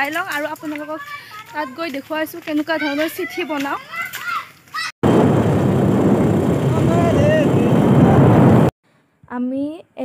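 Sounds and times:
wind buffeting microphone: 5.0 - 8.7
motorbike engine: 5.1 - 8.7.

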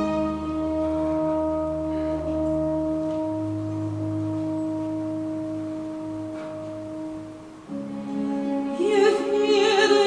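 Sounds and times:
orchestra sustained chord: 0.0 - 10.0.

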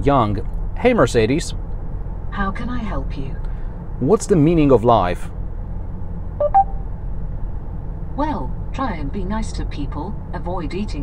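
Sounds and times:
road noise inside car: 0.0 - 11.0
two-note electronic chime: 6.4 - 6.8.

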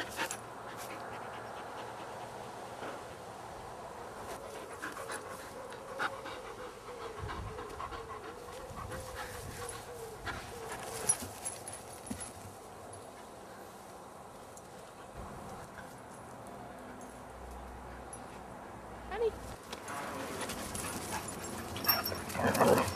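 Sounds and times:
dog panting: 0.0 - 3.0, 4.3 - 10.8.

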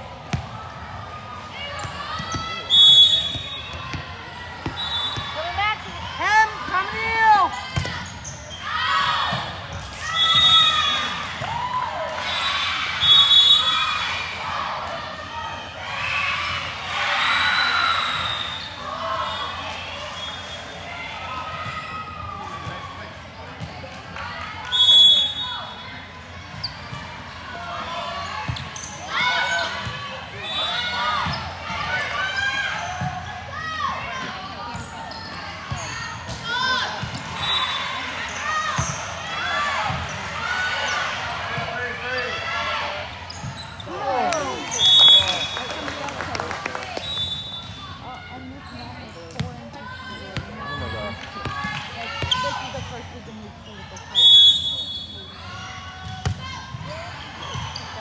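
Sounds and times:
referee's whistle blasts: 2.6 - 3.8, 4.7 - 5.5, 13.0 - 13.8, 24.7 - 25.8, 37.4 - 37.8, 44.7 - 45.7, 47.0 - 47.8, 54.2 - 55.4.

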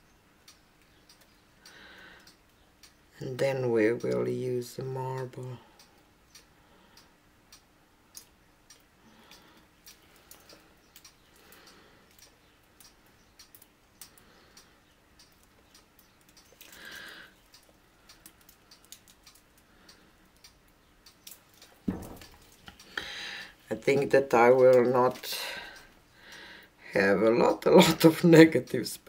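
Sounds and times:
light ticks and taps: 0.4 - 3.1, 3.8 - 26.4
soft knock: 21.9 - 22.2.

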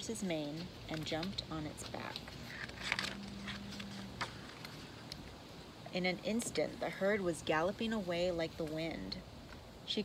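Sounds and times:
woman's voice: 0.0 - 2.4, 5.9 - 9.2
outdoor background: 0.0 - 10.0
book page turning: 1.2 - 5.2.

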